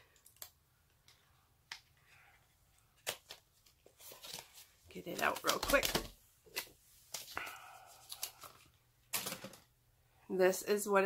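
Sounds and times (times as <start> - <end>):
packaging crinkles and scrapes: 3.0 - 9.6.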